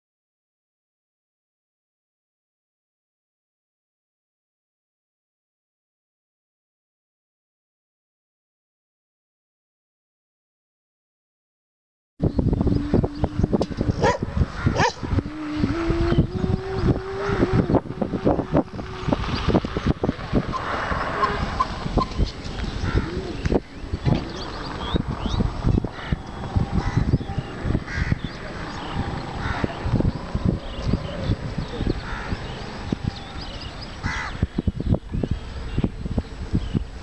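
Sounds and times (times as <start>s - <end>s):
held low tone: 12.2s - 33.9s
crows cawing: 22.8s - 23.4s, 25.9s - 27.2s, 27.8s - 29.9s, 32.0s - 32.6s, 34.0s - 34.4s.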